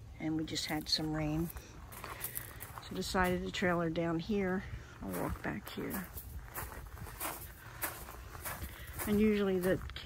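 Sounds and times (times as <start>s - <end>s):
footsteps crunching on gravel: 0.6s - 10.0s.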